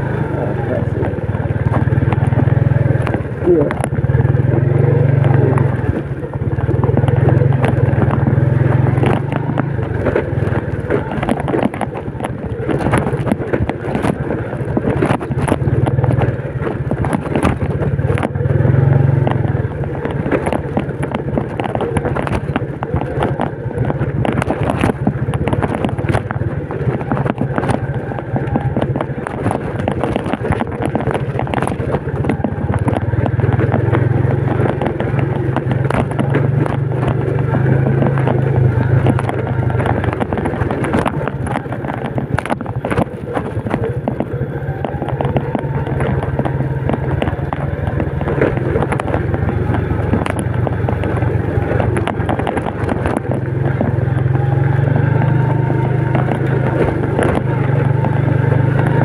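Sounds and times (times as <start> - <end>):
motorcycle clattering over bumps: 0.0 - 59.0
motorcycle engine running: 0.0 - 59.0.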